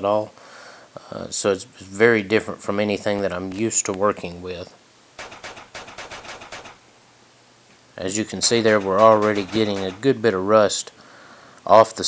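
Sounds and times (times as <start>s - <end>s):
rag scrubbing metal: 5.2s - 6.8s, 8.4s - 10.1s.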